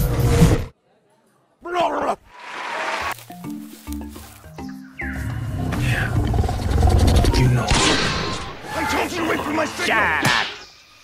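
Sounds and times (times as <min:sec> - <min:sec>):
background music: 0:03.0 - 0:10.2
low rumbling growl: 0:05.5 - 0:07.6.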